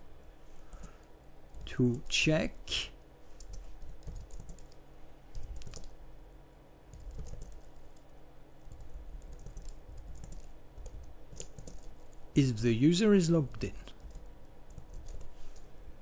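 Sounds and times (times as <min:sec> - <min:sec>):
computer keyboard typing: 0:00.7 - 0:02.1, 0:03.4 - 0:06.0, 0:06.9 - 0:12.2, 0:13.7 - 0:15.3.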